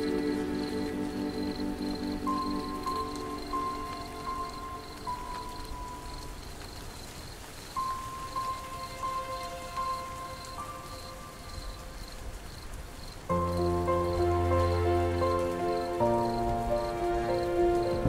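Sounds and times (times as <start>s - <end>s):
soft ambient music: 0.0s - 18.0s
steady rain: 0.0s - 18.0s.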